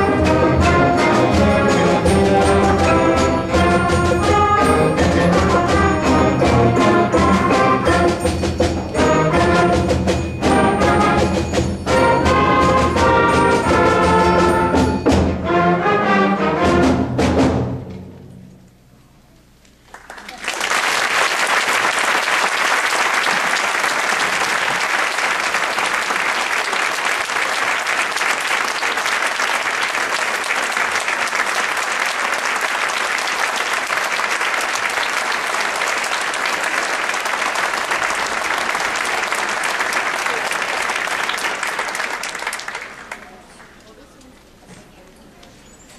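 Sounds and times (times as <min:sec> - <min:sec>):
audience applause: 0:19.8 - 0:43.8.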